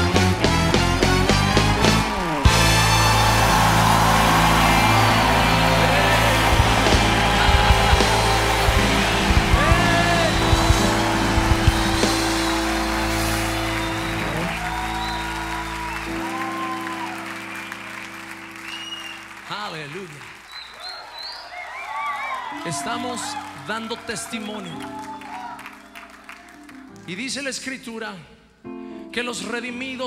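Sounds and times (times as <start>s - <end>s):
live band holding a chord: 0.0s - 18.8s
drum hits: 2.4s - 14.4s.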